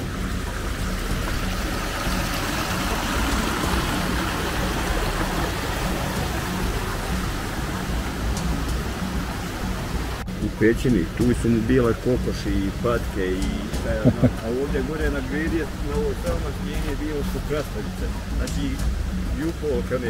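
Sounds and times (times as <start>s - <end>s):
stream running over rocks: 0.0s - 20.0s.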